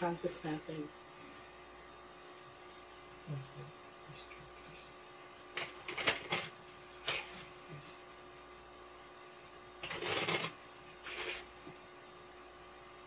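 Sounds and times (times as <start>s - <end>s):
cards being shuffled by hand: 5.6s - 7.5s, 9.8s - 11.5s.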